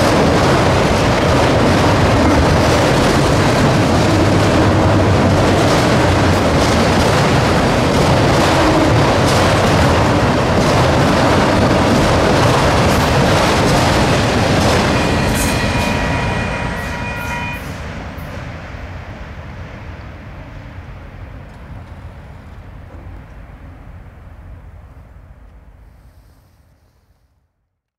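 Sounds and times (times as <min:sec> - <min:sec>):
freight train rolling past: 0:00.0 - 0:26.1.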